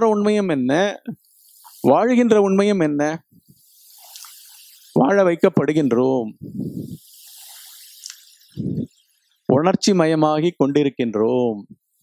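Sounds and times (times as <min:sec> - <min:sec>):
breathy exhale into microphone: 0:06.4 - 0:08.9.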